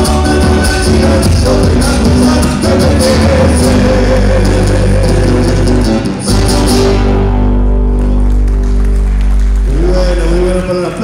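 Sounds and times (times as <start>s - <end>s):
live band playing: 0.0s - 10.9s.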